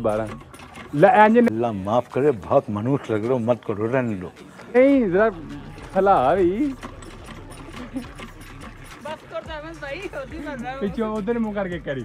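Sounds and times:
hand pump clanking: 0.0s - 10.5s.

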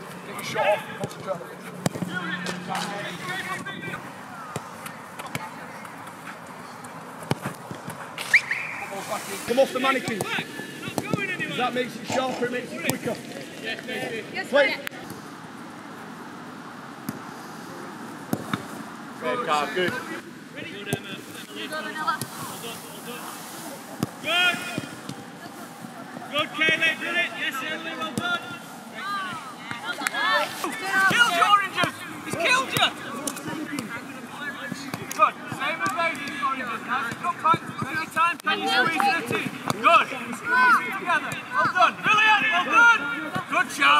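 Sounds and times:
players shouting: 0.0s - 6.0s, 24.0s - 43.9s
outdoor background noise: 0.0s - 43.9s
football being kicked: 1.0s - 2.2s.

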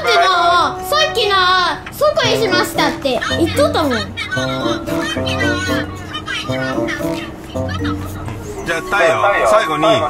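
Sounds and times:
child speaking: 0.0s - 8.3s
background music: 0.0s - 10.0s.

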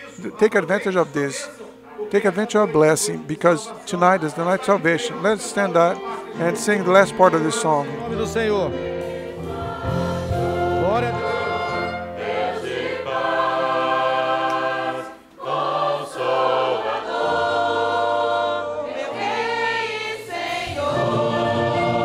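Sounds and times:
congregation singing a hymn: 0.0s - 22.0s
keyboard and band: 0.0s - 22.0s.

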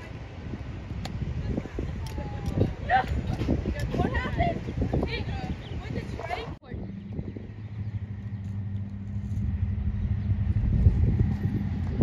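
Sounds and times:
low engine hum: 6.6s - 12.0s
low rumble: 6.7s - 12.0s.

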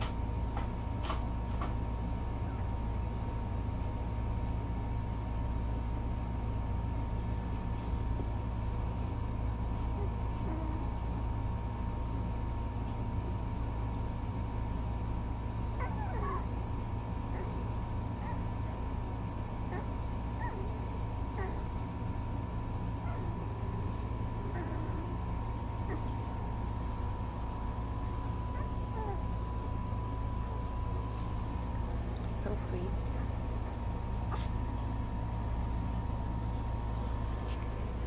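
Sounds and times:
steady low hum: 0.0s - 38.0s
puppies squeaking and whimpering: 34.3s - 34.6s.

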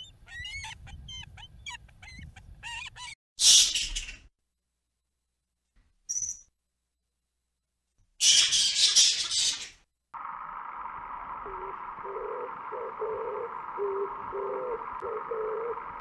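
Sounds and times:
flying fox screeching: 8.2s - 9.8s
low hooting notes: 10.2s - 16.0s.

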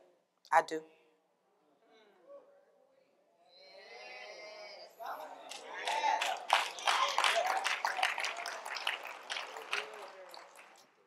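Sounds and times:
congregation clapping: 5.4s - 11.0s.

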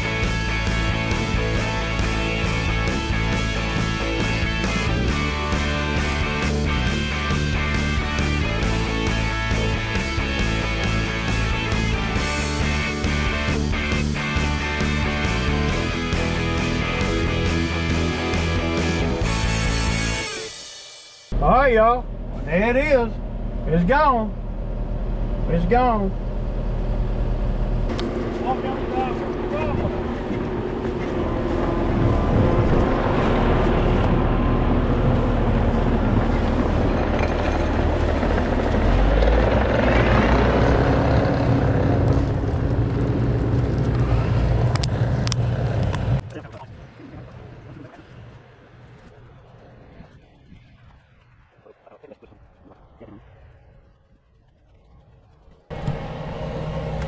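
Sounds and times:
engine running: 0.0s - 57.0s.

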